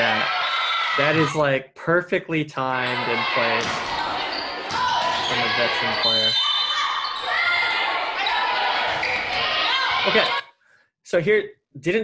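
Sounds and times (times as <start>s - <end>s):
shoes squeaking on gym court: 4.0s - 9.5s.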